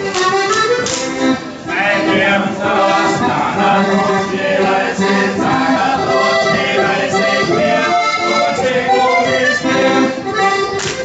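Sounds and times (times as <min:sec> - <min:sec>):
dancers tapping on the beat: 0:00.0 - 0:09.4, 0:10.2 - 0:11.0
accordion dance tune: 0:00.0 - 0:11.0
voices singing: 0:00.0 - 0:11.0.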